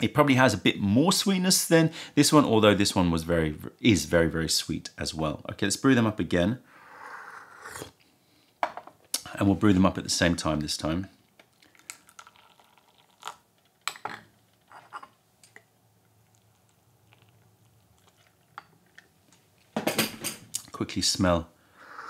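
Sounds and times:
tea pouring into a cup: 11.5s - 13.9s, 16.2s - 19.1s
hot water pouring: 11.6s - 13.8s.

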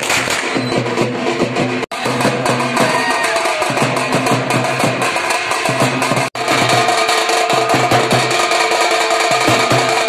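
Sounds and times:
drums beaten with sticks: 0.0s - 10.0s.

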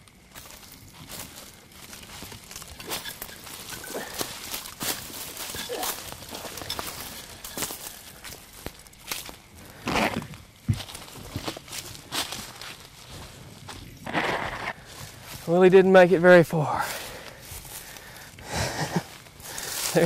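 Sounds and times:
twigs crackling: 0.0s - 20.0s
footsteps through dry leaves: 0.2s - 10.2s, 10.8s - 20.0s
brush rustling: 0.3s - 20.0s.

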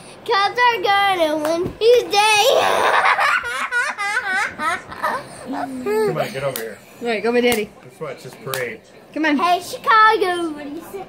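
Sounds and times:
girl laughing: 2.4s - 6.2s.

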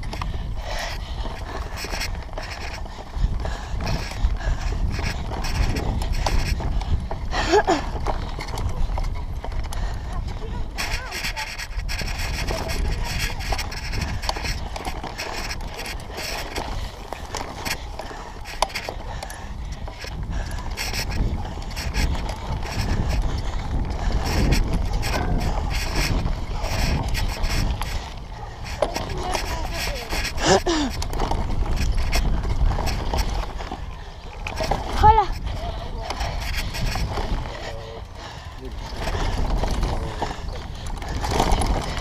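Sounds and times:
bike knocks and rattles: 0.0s - 37.5s, 38.7s - 42.0s
bike tyres rumbling over dirt: 0.0s - 42.0s
voices: 8.6s - 23.5s, 24.1s - 31.0s, 32.2s - 42.0s.

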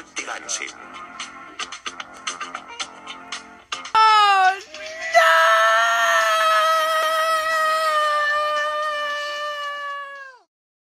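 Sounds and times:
person screaming: 4.0s - 10.5s.

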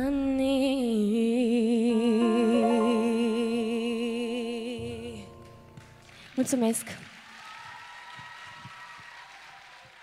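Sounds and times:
held music chord ringing: 1.7s - 6.1s
audience applause: 5.8s - 10.0s.

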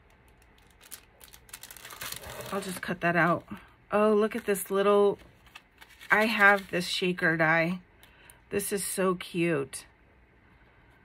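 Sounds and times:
cellophane crinkling: 0.0s - 3.5s, 4.3s - 7.0s.

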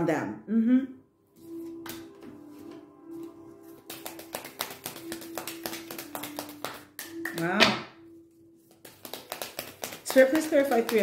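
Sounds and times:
cards being shuffled by hand: 3.7s - 7.0s, 8.6s - 11.0s.

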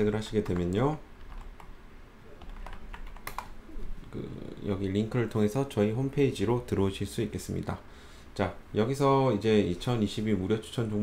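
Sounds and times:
typing on computer keyboard: 0.4s - 1.7s, 2.4s - 3.5s.

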